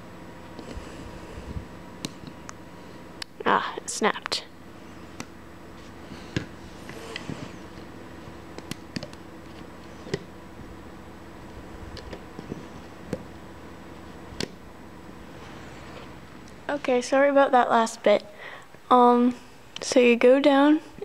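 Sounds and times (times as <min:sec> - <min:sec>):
low background hum: 0:00.0 - 0:21.0.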